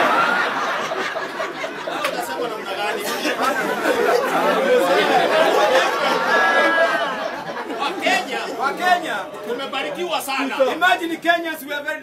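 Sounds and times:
audience chattering: 0.0s - 12.0s.

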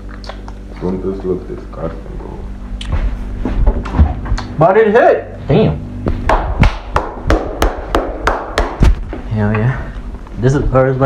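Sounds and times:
hand claps: 6.2s - 9.0s.

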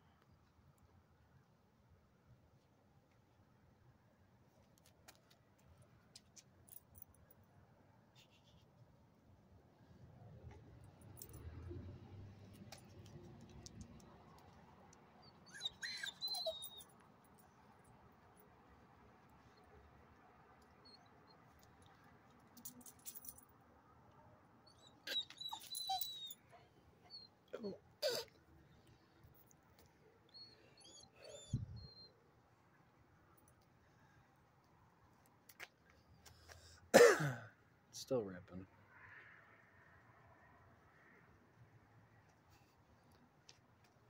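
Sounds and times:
dog whining: 15.2s - 16.9s, 24.7s - 28.4s, 30.3s - 32.2s.

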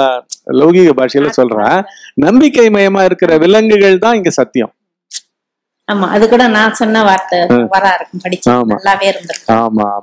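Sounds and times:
man speaking: 0.0s - 4.7s, 7.5s - 7.8s, 8.4s - 10.0s.

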